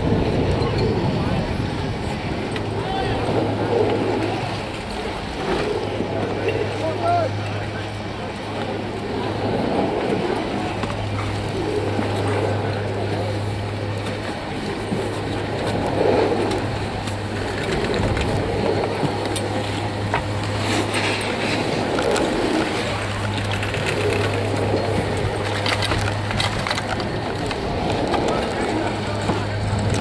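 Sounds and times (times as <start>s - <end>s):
chairlift machinery hum: 0.0s - 30.0s
murmur of skiers: 0.0s - 30.0s
skis and poles clattering: 14.9s - 30.0s.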